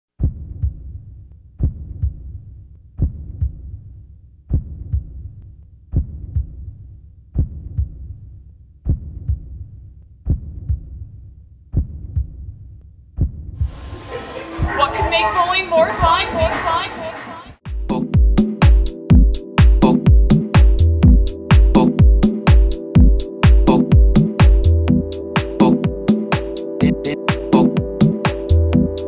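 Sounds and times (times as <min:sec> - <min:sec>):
deep heartbeat-like double thump: 0:01.6 - 0:02.3, 0:04.5 - 0:05.2, 0:07.4 - 0:08.1, 0:10.3 - 0:11.0, 0:11.7 - 0:12.5, 0:13.2 - 0:13.8, 0:17.7 - 0:25.1.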